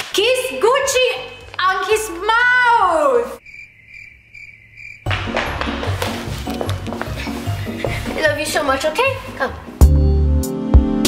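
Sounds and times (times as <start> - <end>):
cricket chirping: 3.4 - 5.2.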